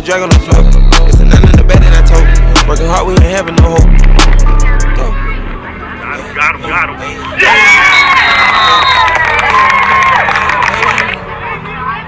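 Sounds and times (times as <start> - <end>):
hip-hop backing track: 0.0 - 7.2.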